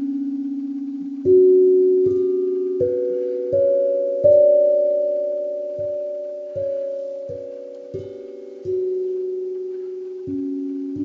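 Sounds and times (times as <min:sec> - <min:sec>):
steel tongue drum notes: 0:00.0 - 0:11.0.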